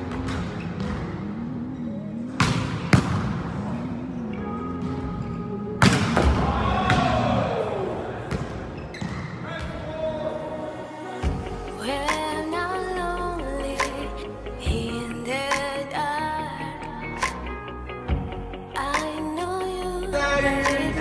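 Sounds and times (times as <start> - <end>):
background music: 0.0 - 8.2, 9.5 - 21.0.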